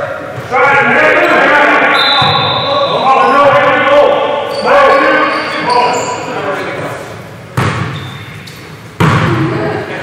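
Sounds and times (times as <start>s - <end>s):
basketball bouncing on gym floor: 7.6s - 8.1s, 9.0s - 9.5s.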